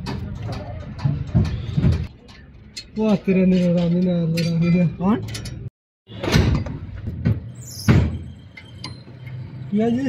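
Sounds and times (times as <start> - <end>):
metal parts and tools knocking: 0.0 - 5.7.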